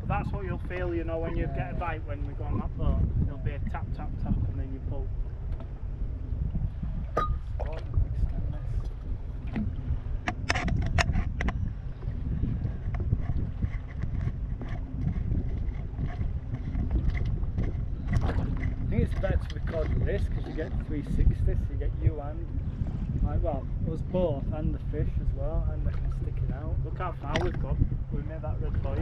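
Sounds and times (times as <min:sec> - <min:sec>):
water lapping around boat: 0:00.0 - 0:29.0
wind rumbling on microphone: 0:00.0 - 0:29.0.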